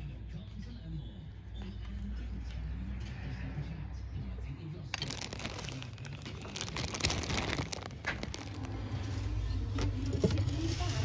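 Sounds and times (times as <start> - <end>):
plastic packaging rustling: 4.9 - 9.0.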